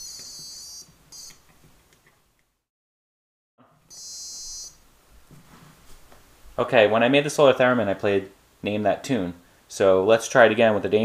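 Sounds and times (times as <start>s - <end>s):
piezo buzzer tone: 0.0s - 1.4s, 3.9s - 4.8s.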